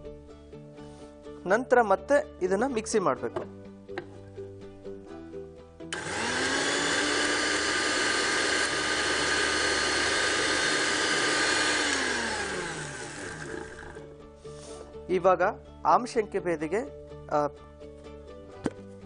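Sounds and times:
mixer grinder motor running: 0:05.9 - 0:14.1.

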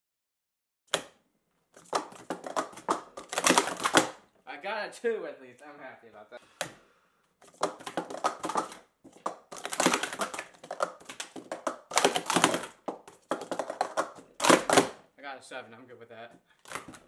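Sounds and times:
plastic cups clicking and clattering: 0:01.8 - 0:04.2, 0:07.4 - 0:15.0.

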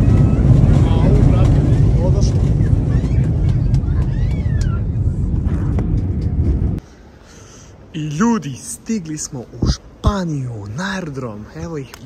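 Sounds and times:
airliner cabin engine rumble: 0:00.0 - 0:07.2.

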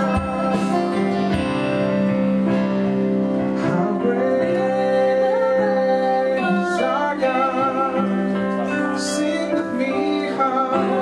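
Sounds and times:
guitar strumming chords: 0:00.0 - 0:09.3.

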